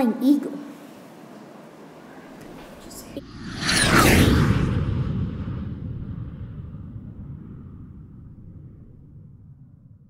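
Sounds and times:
jet engine roar: 2.7 - 9.6.

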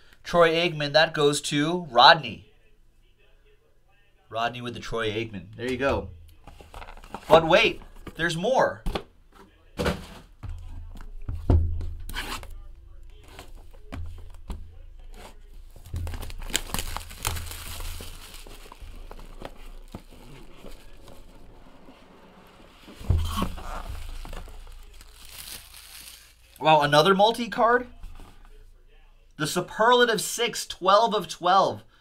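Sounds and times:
plastic wrap tearing and crinkling: 15.2 - 26.6.

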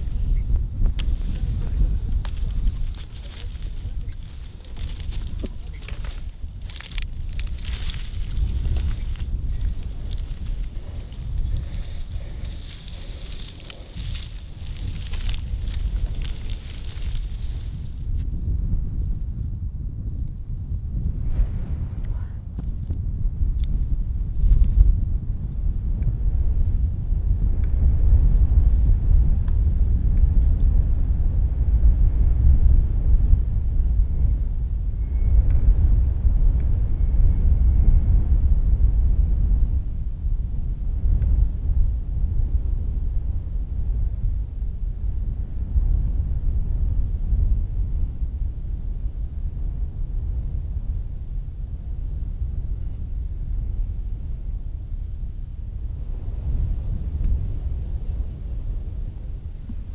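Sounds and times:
wind buffeting microphone: 0.0 - 59.9
dry cane stalks crackling: 0.8 - 18.2.

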